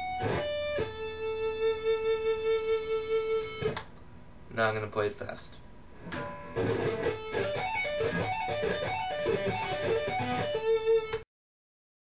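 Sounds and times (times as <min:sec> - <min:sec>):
electric guitar arpeggio: 0:00.0 - 0:03.8, 0:06.0 - 0:11.2.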